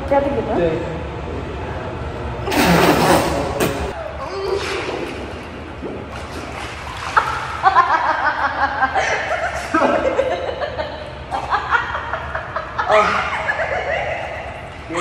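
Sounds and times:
water sloshing: 2.5s - 8.8s
pool water splashing: 2.5s - 15.0s
person laughing: 11.4s - 14.4s.

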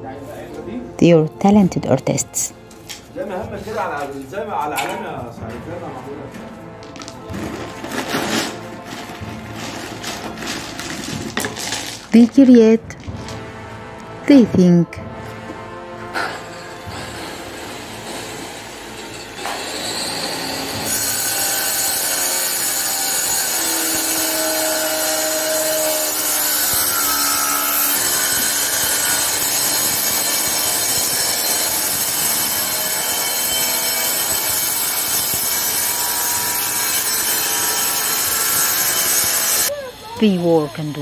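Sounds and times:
harsh rasping noise: 6.6s - 12.1s.

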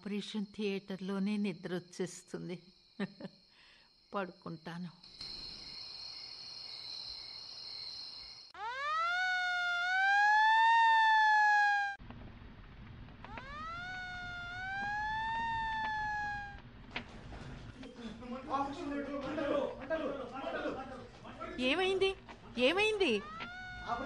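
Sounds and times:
siren winding up: 8.6s - 12.0s, 13.3s - 16.6s, 23.0s - 24.0s.

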